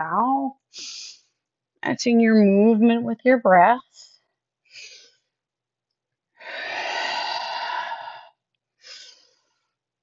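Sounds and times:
person exhaling: 6.4 - 9.6.

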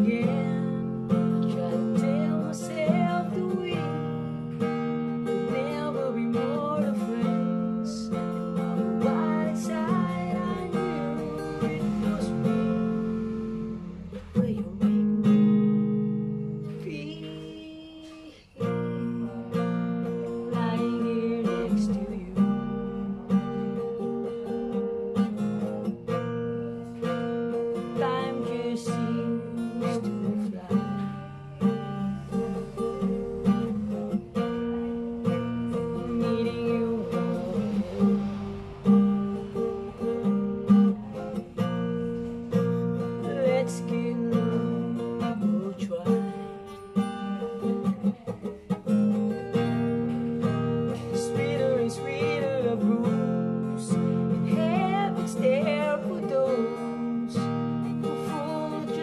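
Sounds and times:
acoustic guitar chords: 0.0 - 59.0
man singing: 43.2 - 46.7, 50.9 - 59.0.

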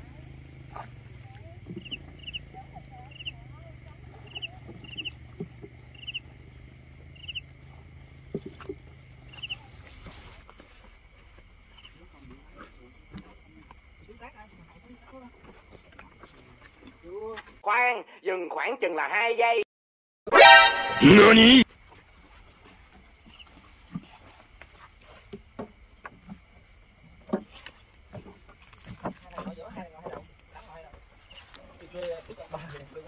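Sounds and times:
frogs chirping: 0.0 - 17.6, 21.0 - 33.0.

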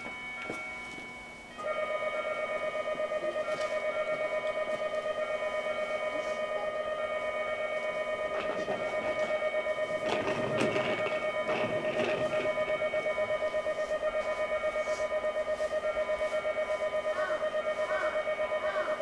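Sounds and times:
pulsing railway warning alarm: 0.0 - 19.0
train wheels clattering over points: 7.2 - 14.0.

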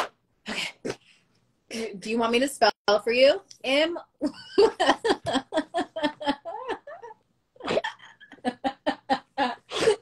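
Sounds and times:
woman laughing hard: 4.2 - 10.0.

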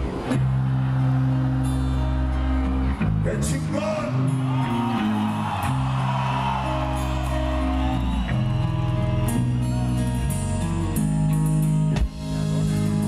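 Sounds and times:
hard rock band playing live: 4.3 - 13.0.

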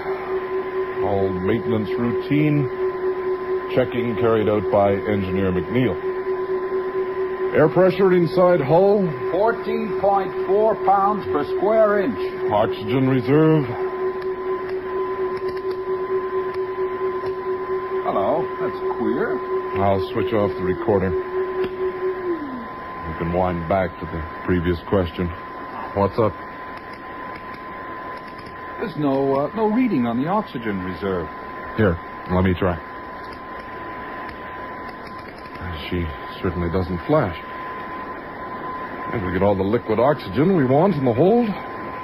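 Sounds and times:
electronic hum with two tones: 0.0 - 42.0
man speaking: 1.0 - 2.8, 3.7 - 6.1, 7.5 - 13.9, 18.0 - 21.2, 23.0 - 26.4, 28.8 - 32.8, 35.6 - 37.4, 39.1 - 41.6.

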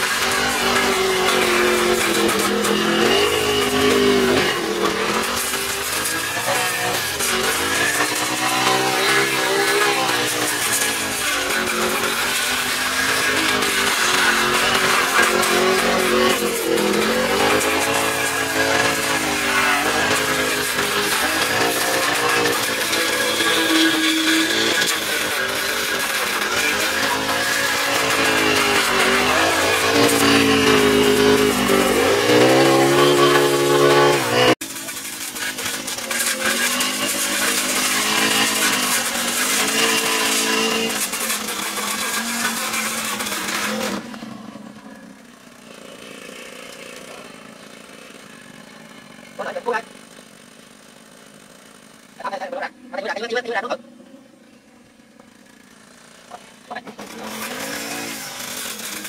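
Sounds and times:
brush cutter engine cutting grass: 0.0 - 59.0.

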